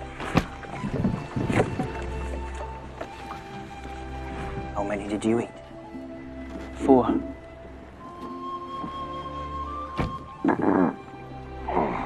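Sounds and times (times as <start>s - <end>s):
scraping and sloshing handling noise: 0.0s - 4.8s.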